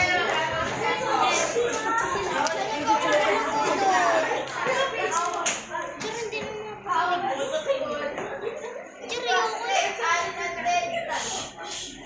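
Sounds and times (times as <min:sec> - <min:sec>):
young people talking: 0:00.0 - 0:12.0.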